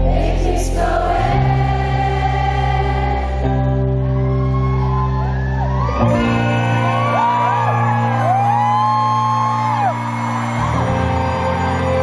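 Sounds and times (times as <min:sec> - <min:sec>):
crowd shouting and whooping: 0:03.3 - 0:12.0
rock band playing live: 0:03.6 - 0:12.0.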